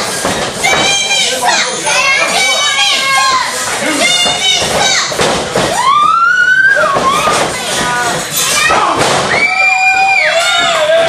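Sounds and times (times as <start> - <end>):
children yelling and shouting: 0.0 - 7.6, 8.4 - 11.0.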